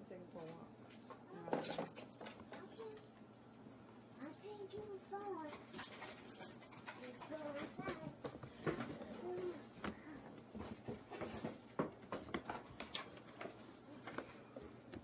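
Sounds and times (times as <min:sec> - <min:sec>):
plastic parts clicking and knocking: 0:09.8 - 0:14.3.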